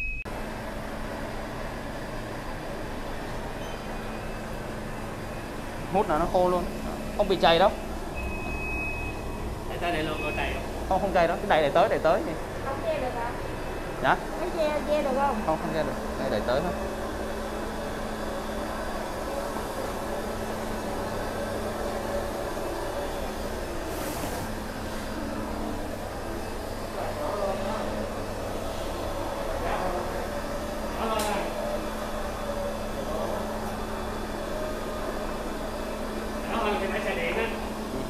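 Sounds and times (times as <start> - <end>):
floor scrubber humming: 0.4 - 38.0.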